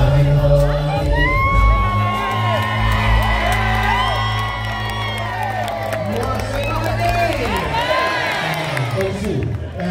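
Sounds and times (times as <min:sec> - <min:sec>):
live gospel music: 0:00.0 - 0:09.5
crowd cheering and whooping: 0:00.6 - 0:09.9.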